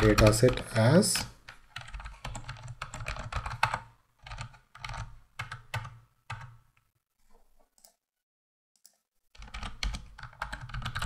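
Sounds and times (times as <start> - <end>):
computer keyboard typing: 0.0 - 6.6, 8.8 - 11.0.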